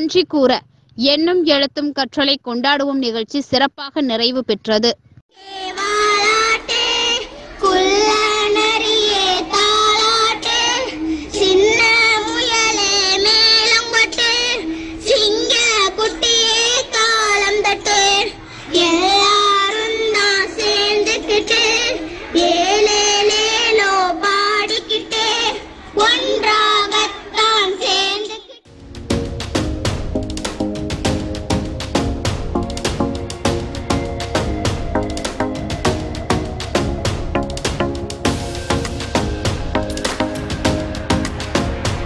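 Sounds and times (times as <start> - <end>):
children singing: 5.4 - 28.4.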